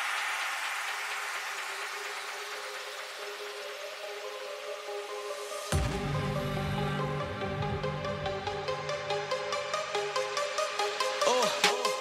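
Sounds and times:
hiss-like noise wash: 0.0 - 5.7.

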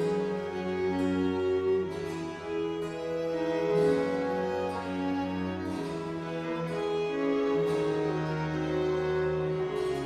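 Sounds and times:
string ensemble with harpsichord: 0.0 - 10.0.

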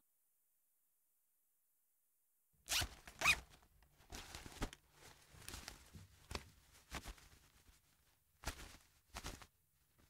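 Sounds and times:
soft rustling: 3.0 - 10.0.

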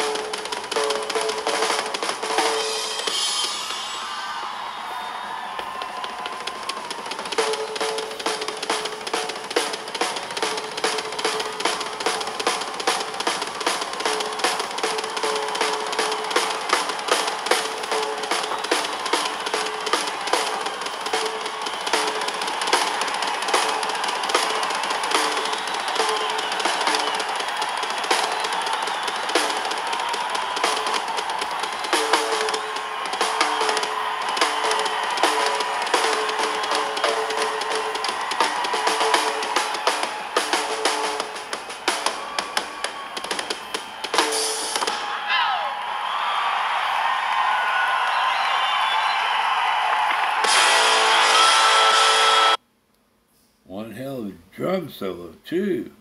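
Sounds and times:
rock drum solo: 0.0 - 4.0, 5.7 - 45.2.

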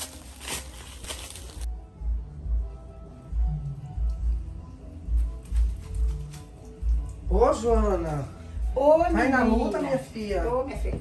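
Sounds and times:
footsteps crunching through dry leaves: 0.0 - 1.7
background music with deep bass beat: 1.6 - 11.0.

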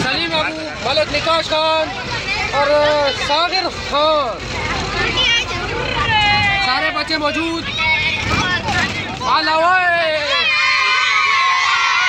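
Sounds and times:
children shouting and cheering: 4.8 - 12.0.

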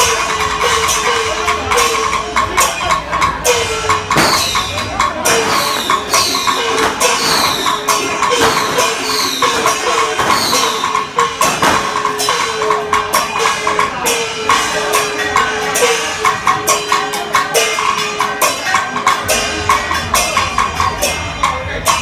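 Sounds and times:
clashing cymbals: 0.0 - 22.0
drums: 0.0 - 22.0.

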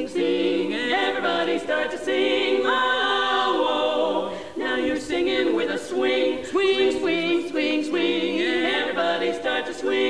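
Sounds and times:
women singing close harmony: 0.0 - 10.0.

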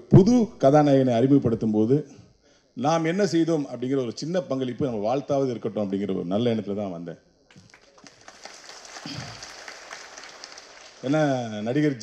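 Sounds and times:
audience applause: 7.5 - 12.0.

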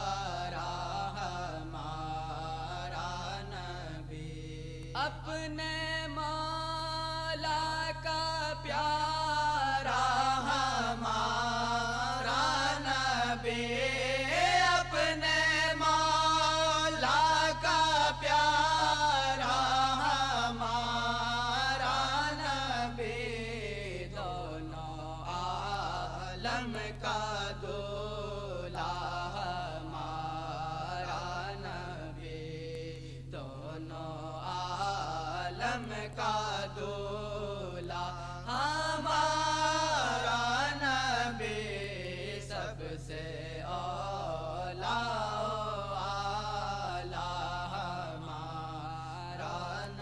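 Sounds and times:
faint steady hum: 0.0 - 50.0
person singing devotional song: 0.0 - 50.0.

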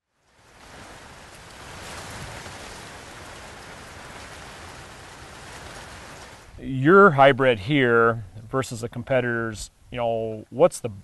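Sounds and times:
steady background hiss: 0.1 - 11.0.

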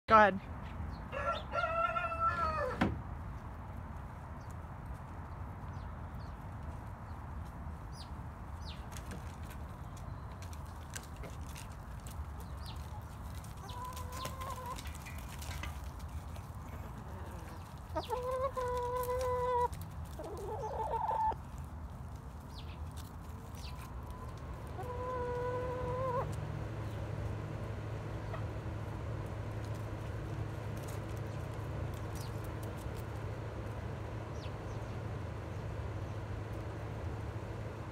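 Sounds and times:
chickens calling: 0.9 - 3.5, 7.4 - 37.9
low steady rumble: 23.3 - 37.9.

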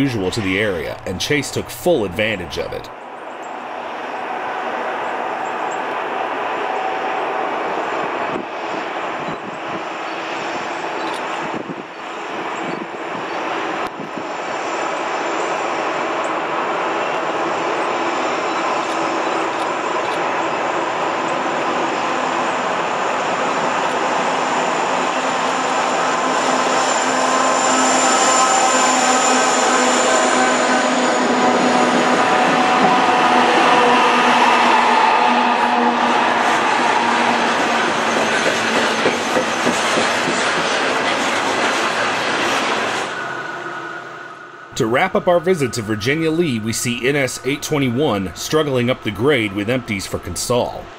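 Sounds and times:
diesel locomotive engines: 0.0 - 50.9
steady high whine: 8.1 - 39.7, 41.9 - 50.9
train cars rolling on steel wheels: 14.8 - 43.5.

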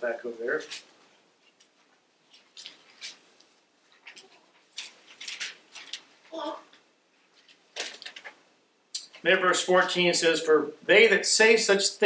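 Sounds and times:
paper pages rustling: 0.6 - 6.4, 7.3 - 8.4.

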